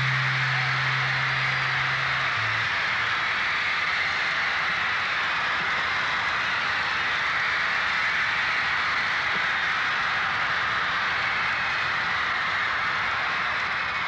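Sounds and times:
band low held note: 0:00.0 - 0:03.1
crowd screaming and cheering: 0:00.0 - 0:14.0.

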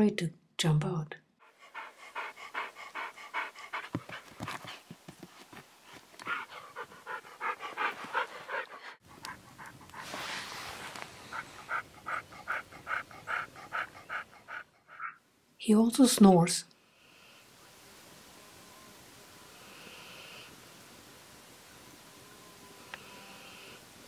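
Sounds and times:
dog panting rapidly: 0:01.4 - 0:15.2.

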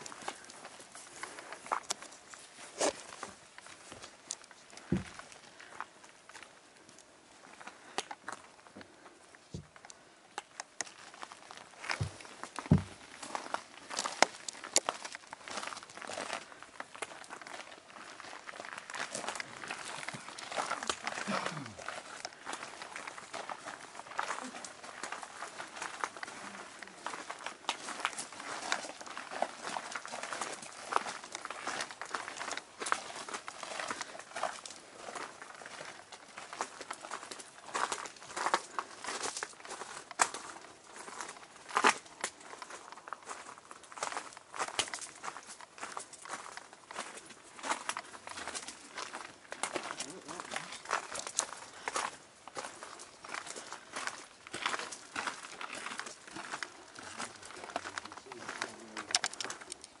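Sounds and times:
footsteps on rough ground: 0:00.0 - 1:00.0.

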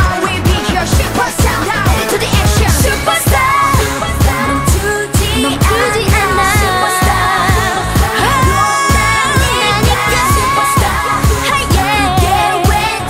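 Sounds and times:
steady drum beat: 0:00.0 - 0:13.0
women singing: 0:00.0 - 0:13.0.

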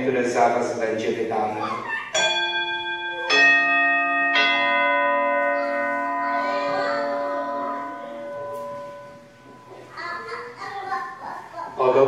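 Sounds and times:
altar bells ringing: 0:02.1 - 0:11.2.

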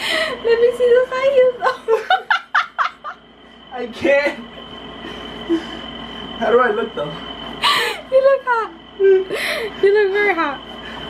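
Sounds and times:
woman laughing hard: 0:01.7 - 0:03.2.

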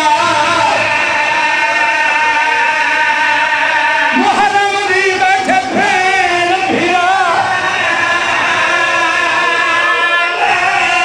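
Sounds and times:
man chanting long high note: 0:00.0 - 0:11.0.

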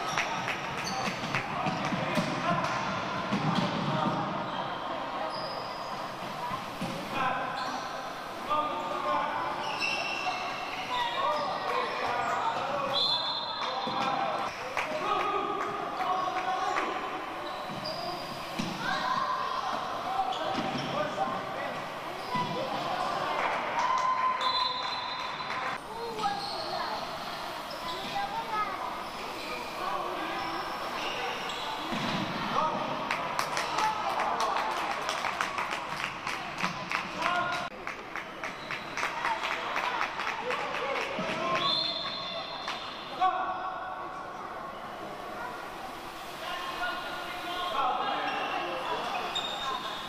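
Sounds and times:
shoes squeaking: 0:09.5 - 0:14.2, 0:24.4 - 0:32.2.

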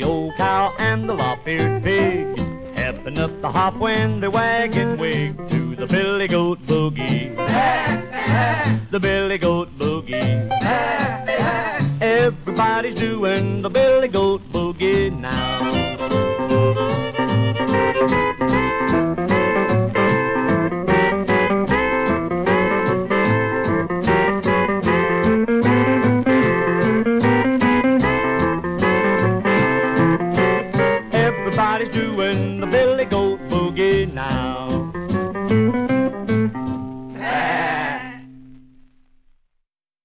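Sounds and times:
country boogie band playing: 0:00.0 - 0:38.2.

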